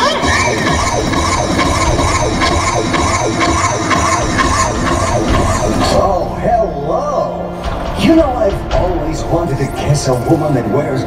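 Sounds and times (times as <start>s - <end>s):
music with steady beat: 0.0s - 10.6s.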